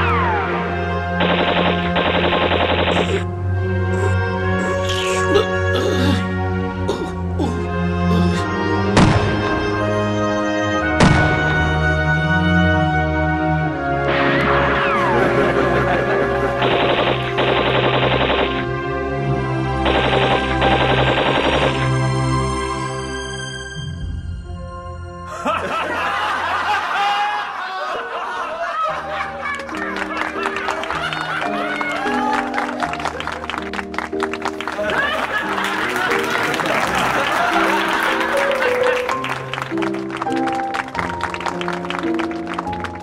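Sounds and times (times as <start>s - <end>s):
background music with low drone: 0.0s - 43.0s
machine-gun fire: 1.2s - 3.2s, 16.5s - 18.7s, 19.8s - 22.2s.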